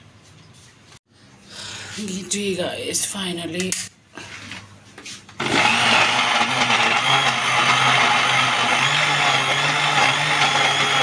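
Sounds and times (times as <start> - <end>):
electric blender grinding: 5.4 - 11.0.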